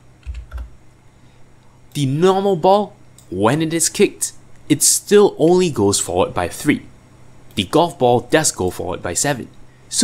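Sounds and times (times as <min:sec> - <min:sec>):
keyboard typing: 0:00.2 - 0:00.7.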